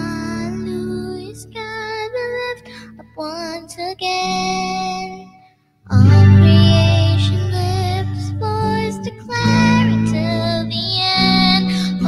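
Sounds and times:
girl singing a hymn: 0:00.0 - 0:12.0.

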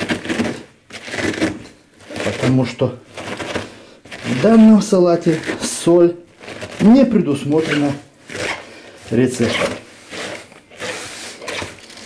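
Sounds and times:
cabbage squeezed in plastic bowl: 0:00.0 - 0:12.0.

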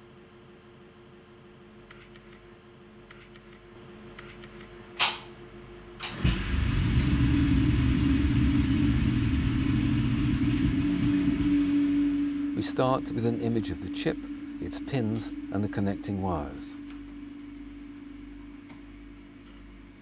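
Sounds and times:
vacuum pump humming: 0:06.0 - 0:20.0.

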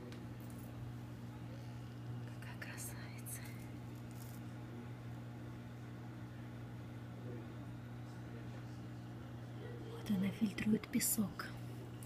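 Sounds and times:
person whispering: 0:02.3 - 0:03.6.

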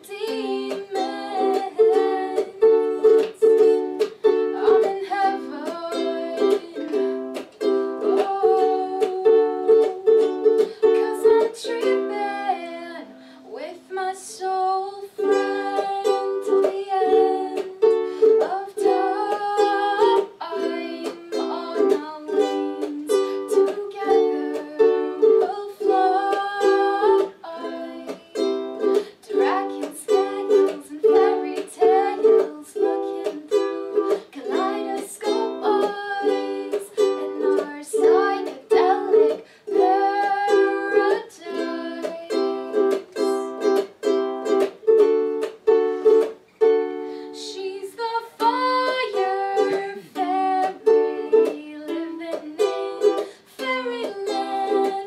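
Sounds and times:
woman singing: 0:00.0 - 0:43.8, 0:46.9 - 0:55.0
ukulele strumming chords: 0:00.0 - 0:55.0.

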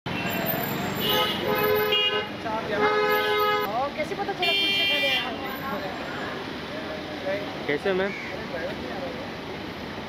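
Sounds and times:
street traffic: 0:00.0 - 0:10.0
car horn honking: 0:01.0 - 0:03.7, 0:04.4 - 0:05.4.

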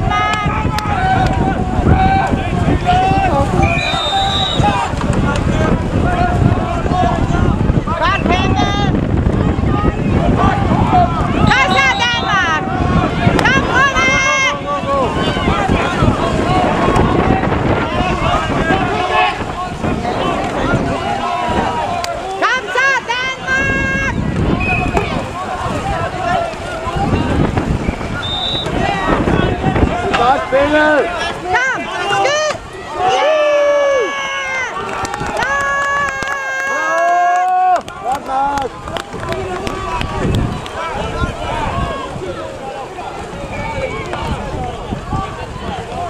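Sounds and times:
people shouting: 0:00.0 - 0:46.0
spectators cheering: 0:00.0 - 0:46.0
wind on microphone: 0:00.0 - 0:46.0.

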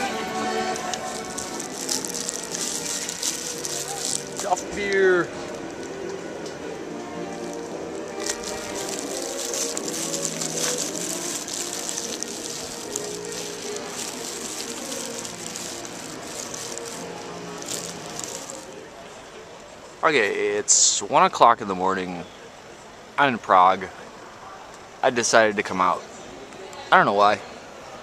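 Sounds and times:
music playing: 0:00.0 - 0:18.9
people's voices: 0:00.0 - 0:22.3.

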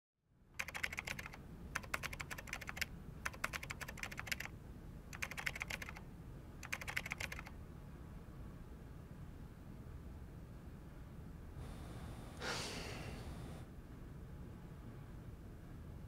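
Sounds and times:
typing on computer keyboard: 0:00.6 - 0:04.5, 0:05.1 - 0:06.0, 0:06.6 - 0:07.5.

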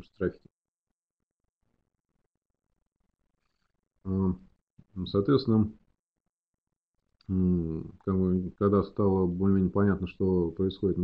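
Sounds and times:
man speaking: 0:00.0 - 0:00.4, 0:04.1 - 0:04.4, 0:05.0 - 0:05.8, 0:07.3 - 0:11.0.

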